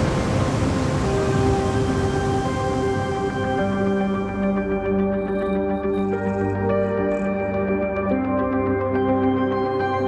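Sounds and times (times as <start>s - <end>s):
soft sustained music notes: 0.0s - 10.0s.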